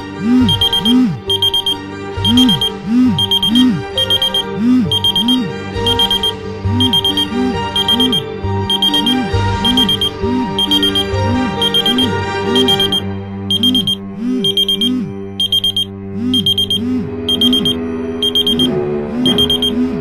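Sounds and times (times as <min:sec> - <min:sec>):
sustained low musical tones: 0:00.0 - 0:20.0
electronic alarm beeping: 0:00.2 - 0:20.0.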